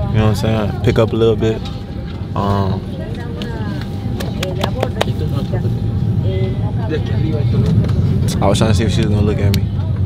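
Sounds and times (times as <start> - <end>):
airliner cabin rumble: 0.0 - 10.0.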